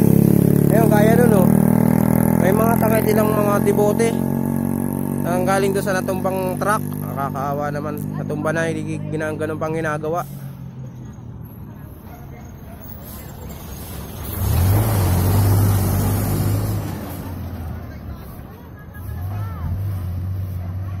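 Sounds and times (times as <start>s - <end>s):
truck diesel engine passing: 0.0s - 21.0s.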